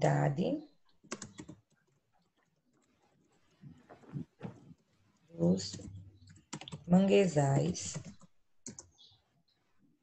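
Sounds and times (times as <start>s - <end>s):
typing on computer keyboard: 1.0s - 3.0s, 5.7s - 6.9s, 7.9s - 9.0s.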